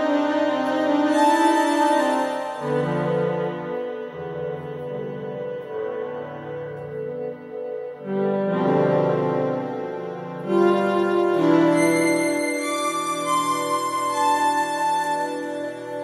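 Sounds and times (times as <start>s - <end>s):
electronic keyboard chords: 0.0s - 16.0s
higher keyboard notes: 0.0s - 16.0s.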